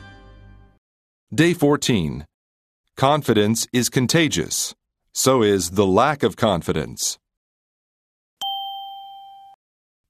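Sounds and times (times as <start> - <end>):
bright chime ding: 8.4 - 9.6.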